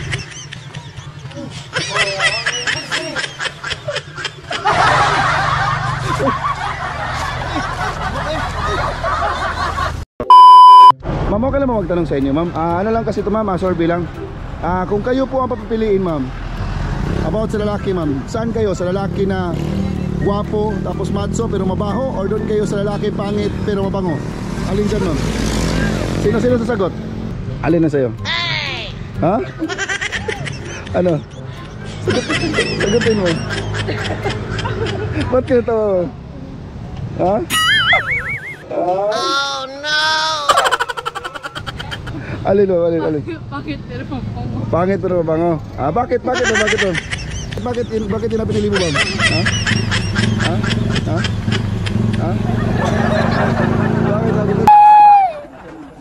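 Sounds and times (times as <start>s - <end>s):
man snickering and chuckling: 0.0s - 9.5s, 29.5s - 35.4s, 40.4s - 42.4s, 46.4s - 54.3s
woman saying ha: 28.3s - 29.0s.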